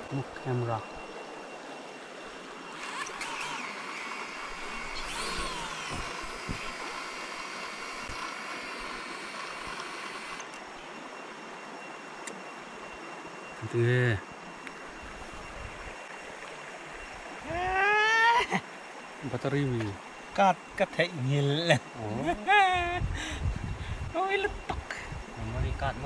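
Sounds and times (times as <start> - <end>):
drone motors whining: 0.0 - 25.7.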